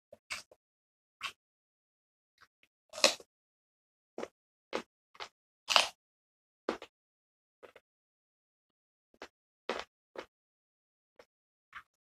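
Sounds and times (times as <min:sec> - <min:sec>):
person chewing raw carrot: 0:00.2 - 0:00.6, 0:03.0 - 0:03.3, 0:04.2 - 0:06.0, 0:06.7 - 0:06.9, 0:09.2 - 0:10.3.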